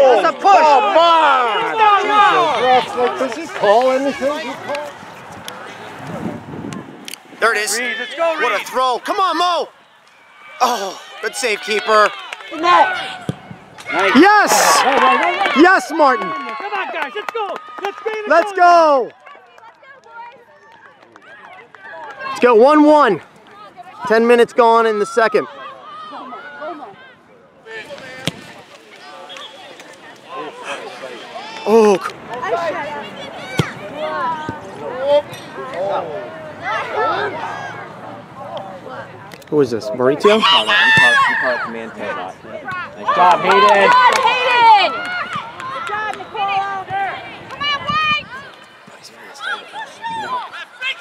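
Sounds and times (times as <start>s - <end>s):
outdoor background noise: 0.0s - 51.0s.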